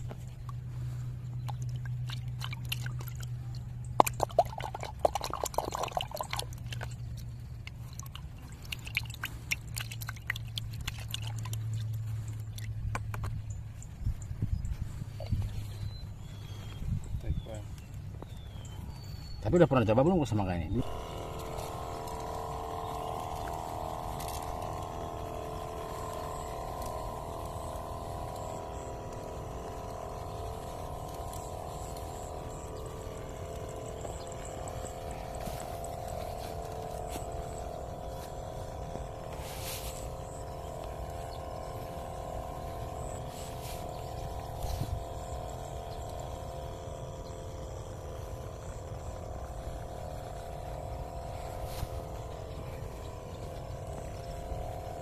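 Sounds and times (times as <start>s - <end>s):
electric sprayer pump humming: 0.0s - 55.0s.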